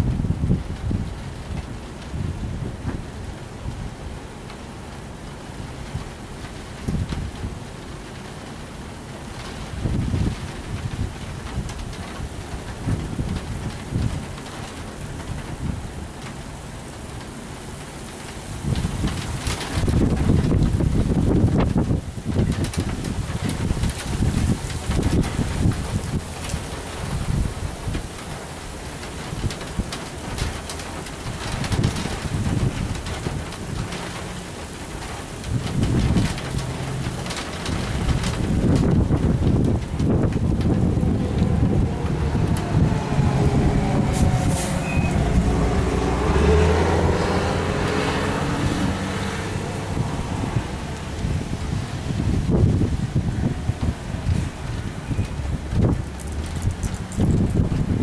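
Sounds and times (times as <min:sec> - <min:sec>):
gusty wind buffeting microphone: 0:00.0 - 0:58.0
engine-like rumbling drone: 0:39.5 - 0:52.6.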